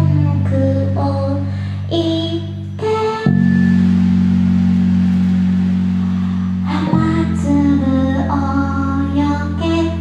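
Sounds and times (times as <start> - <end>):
rock band sustained low chord: 1.5 - 10.0.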